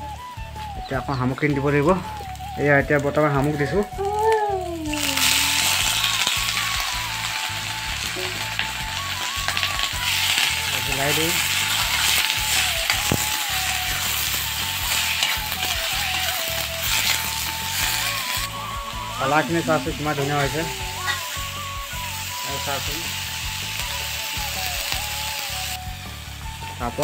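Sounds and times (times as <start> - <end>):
food sizzling in hot oil: 0.0 - 27.0.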